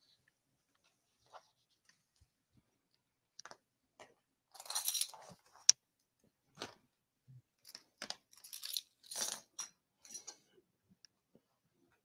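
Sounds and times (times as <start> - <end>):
small hard objects clinking: 4.5 - 5.6, 7.6 - 10.3.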